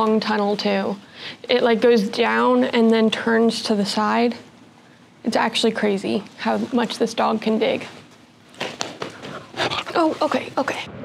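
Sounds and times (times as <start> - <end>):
dog scuffling: 7.9 - 10.5.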